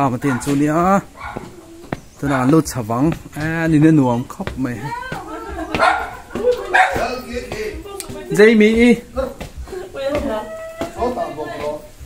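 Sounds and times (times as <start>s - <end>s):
people's voices: 0.0s - 12.0s
dog barking: 0.1s - 2.6s, 5.8s - 7.1s.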